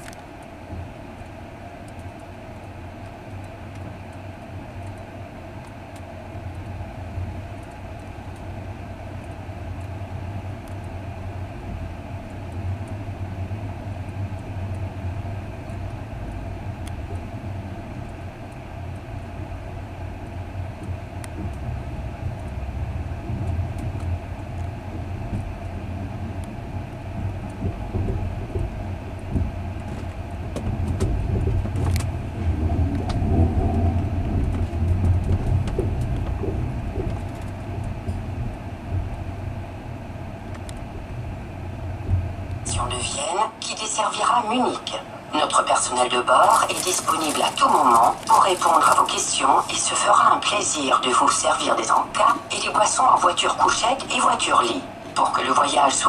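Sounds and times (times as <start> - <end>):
train wheels rumbling on rail: 0.0 - 43.2, 44.8 - 55.0
constant hum: 0.0 - 56.0.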